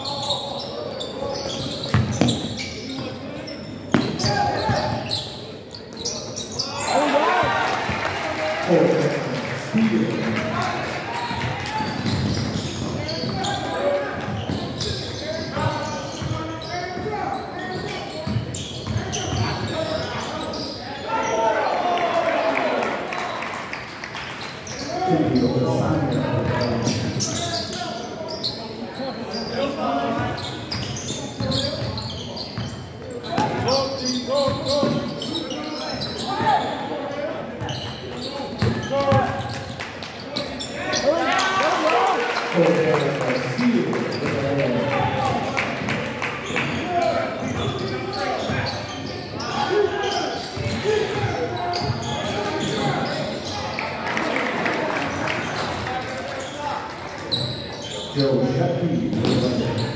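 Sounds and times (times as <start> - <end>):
indistinct shouting and chatter: 0.0 - 23.8, 24.4 - 59.9.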